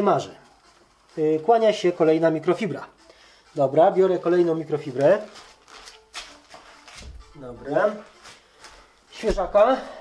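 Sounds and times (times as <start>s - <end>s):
cloth rustling: 3.6s - 10.0s.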